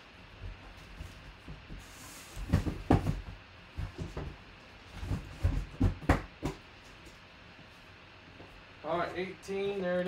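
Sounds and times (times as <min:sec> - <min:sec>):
boxes knocking and thumping: 0:00.4 - 0:06.7.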